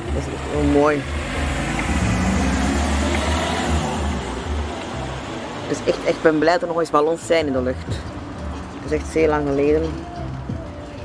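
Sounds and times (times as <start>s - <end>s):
road vehicle passing: 0.0s - 11.0s.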